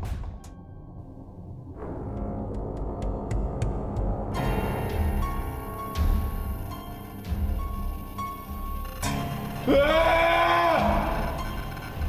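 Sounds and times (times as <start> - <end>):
man screaming: 9.6 - 11.5.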